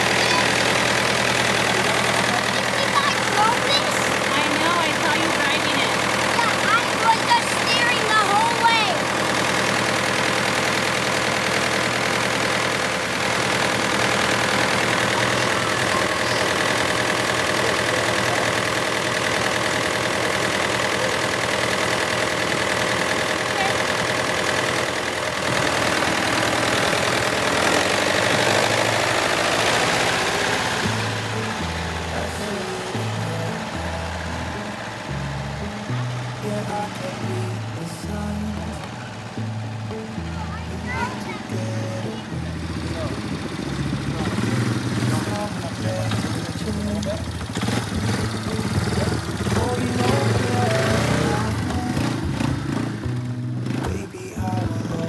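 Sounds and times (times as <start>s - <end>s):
child's voice: 0.0s - 0.7s, 2.6s - 5.0s, 6.3s - 9.1s, 15.8s - 16.6s, 40.3s - 42.3s
tractor engine idling: 0.0s - 55.0s
background music: 24.8s - 55.0s.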